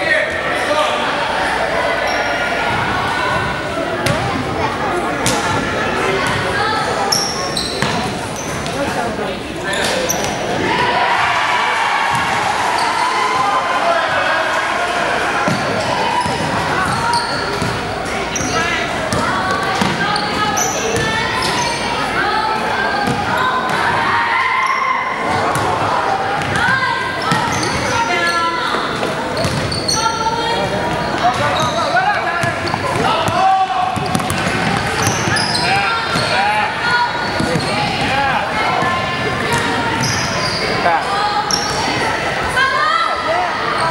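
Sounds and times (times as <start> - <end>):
sneakers squeaking: 1.9 - 4.5, 5.2 - 10.6, 15.4 - 22.1, 26.4 - 42.0.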